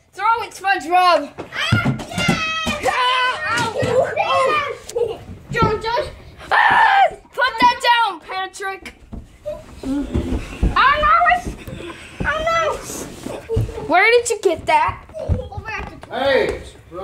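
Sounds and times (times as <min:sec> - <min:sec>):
children shouting in play: 0:01.6 - 0:05.2, 0:06.0 - 0:07.9
dull thumps: 0:09.1 - 0:16.6.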